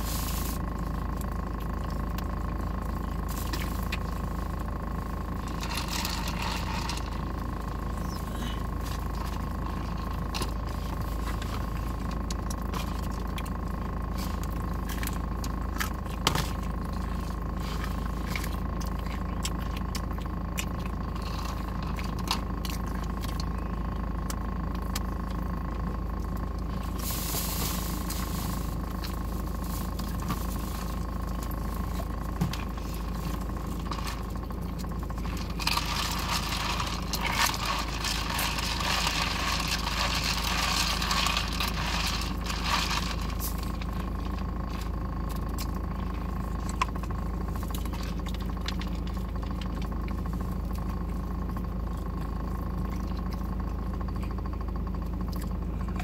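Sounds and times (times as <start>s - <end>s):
food packaging crackling: 33.1s - 45.9s.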